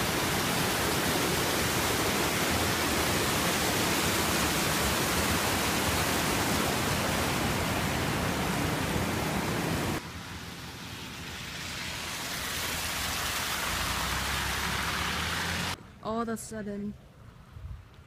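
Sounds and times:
creek water rushing over rocks: 0:00.0 - 0:10.0.

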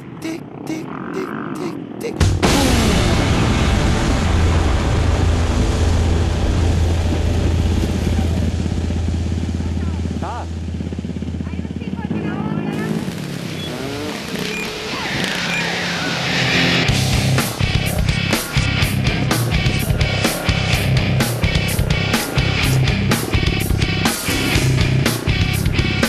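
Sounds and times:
quad bike engines revving: 0:00.0 - 0:03.4, 0:07.4 - 0:26.0.

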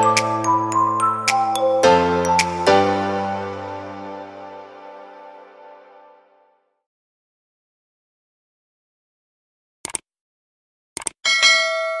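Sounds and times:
mouse clicks: 0:09.8 - 0:10.0, 0:11.0 - 0:11.2
bright bell ding: 0:11.3 - 0:12.0.

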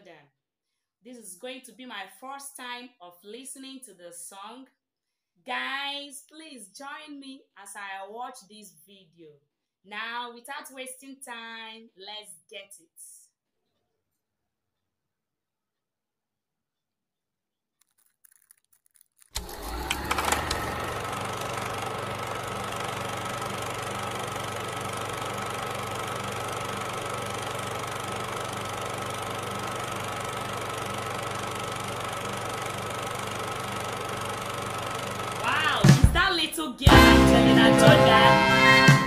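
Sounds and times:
machine hum: 0:19.4 - 0:36.2.

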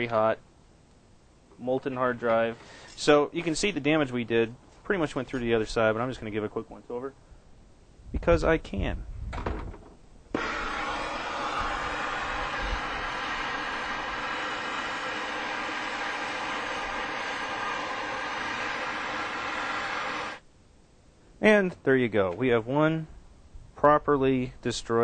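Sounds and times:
blowtorch flame hissing: 0:10.3 - 0:20.4.

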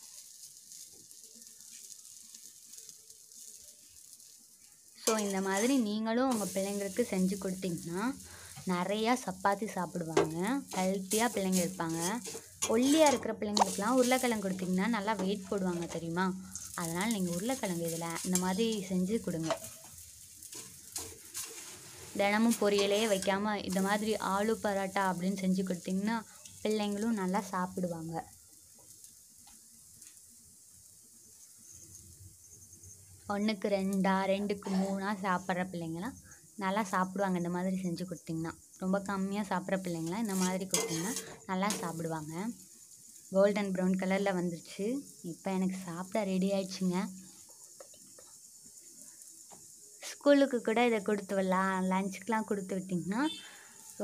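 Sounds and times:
flatbread sizzling in oil: 0:00.0 - 0:54.0
woman talking: 0:05.1 - 0:19.6, 0:22.2 - 0:28.2, 0:33.3 - 0:42.6, 0:43.4 - 0:47.2, 0:50.0 - 0:53.4.

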